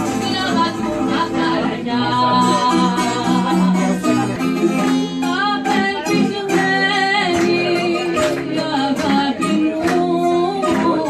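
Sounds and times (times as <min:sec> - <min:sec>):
bouzoukia and guitar playing: 0:00.0 - 0:11.0
woman singing: 0:00.0 - 0:11.0.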